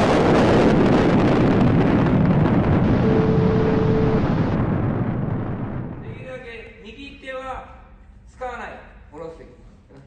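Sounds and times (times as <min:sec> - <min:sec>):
steady tone: 0:02.7 - 0:06.0.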